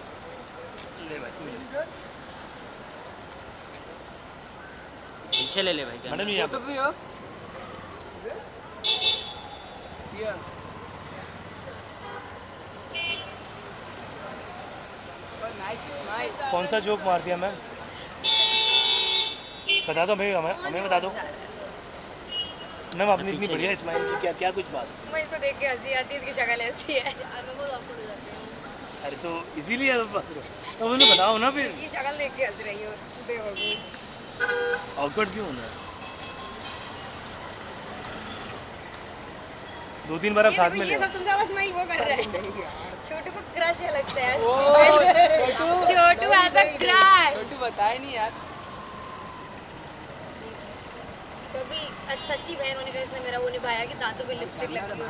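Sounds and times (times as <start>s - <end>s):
street traffic noise: 0.0s - 55.0s.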